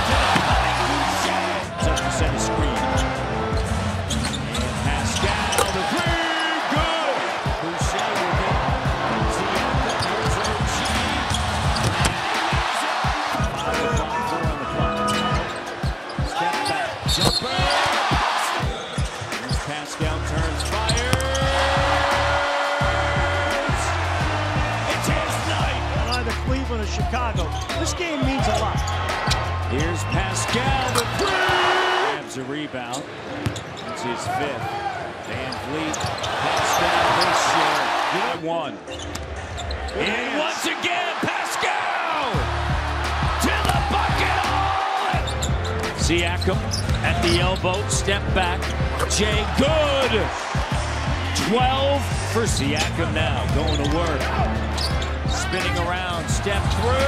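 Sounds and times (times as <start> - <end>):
crowd noise: 0.0 - 57.0
basketball bouncing on court: 5.5 - 5.8, 11.3 - 12.6, 20.9 - 21.9, 43.6 - 44.1.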